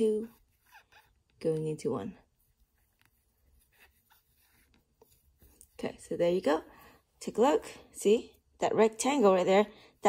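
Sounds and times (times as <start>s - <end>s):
crochet hook scratching yarn: 0.0s - 6.6s.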